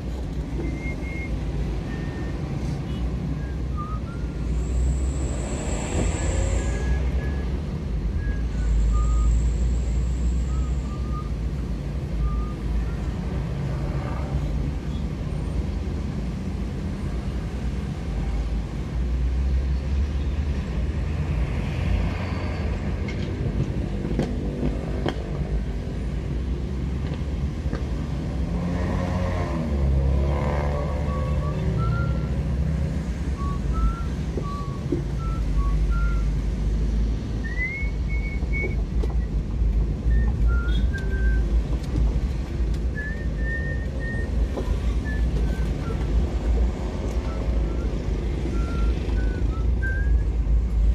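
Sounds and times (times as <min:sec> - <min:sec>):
engines in slow traffic: 0:00.0 - 0:50.9.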